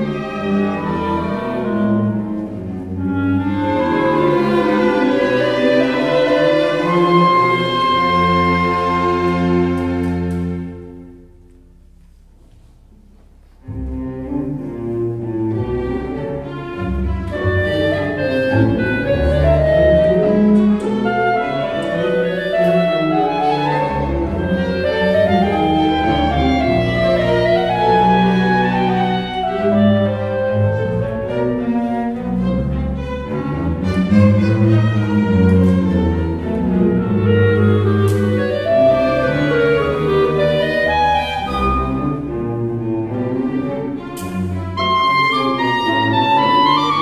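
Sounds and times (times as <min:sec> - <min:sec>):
solo clarinet: 0:00.0 - 0:11.9, 0:13.5 - 0:47.0
cellos and double basses: 0:00.0 - 0:47.0
string orchestra: 0:00.0 - 0:47.0.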